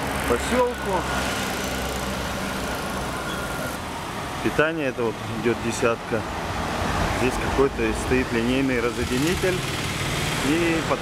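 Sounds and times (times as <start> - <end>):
road noise hum: 0.0 - 11.0.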